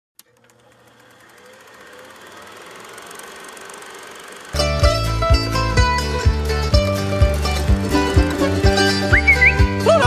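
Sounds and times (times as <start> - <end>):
click: 0.2 - 1.4
mechanical clatter of small machine: 0.2 - 4.6.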